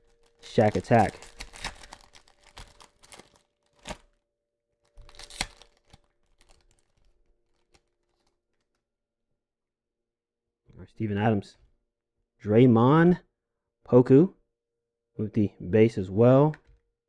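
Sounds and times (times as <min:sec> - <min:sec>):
plastic wrapper crinkling and tearing: 0:00.0 - 0:04.2, 0:04.8 - 0:08.8.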